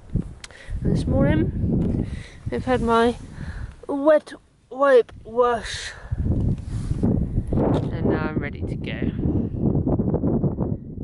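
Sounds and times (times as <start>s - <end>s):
wind buffeting microphone: 0.0s - 4.2s, 4.9s - 11.0s.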